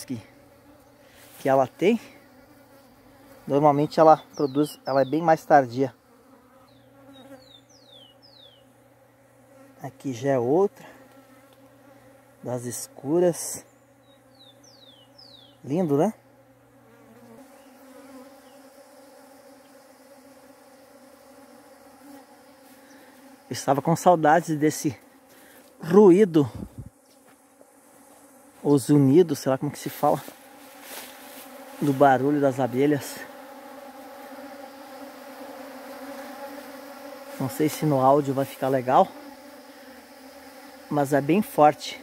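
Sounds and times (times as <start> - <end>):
bees buzzing: 0.0 - 42.0.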